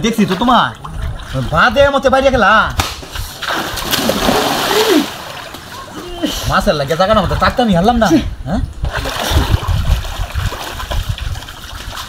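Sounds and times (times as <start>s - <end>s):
large splash into water: 2.8s - 5.4s
person crying out: 4.7s - 5.2s.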